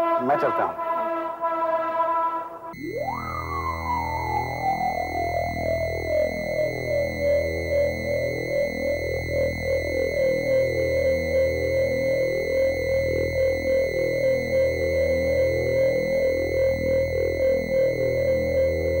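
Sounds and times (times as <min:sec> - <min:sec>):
repeating keyboard notes: 0:02.8 - 0:19.0
synthesizer high tone over drone: 0:02.8 - 0:19.0.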